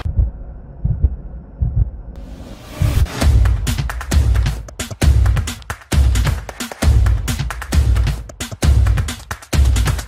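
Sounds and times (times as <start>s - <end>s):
muffled heartbeat-like pulse: 0.0s - 3.1s.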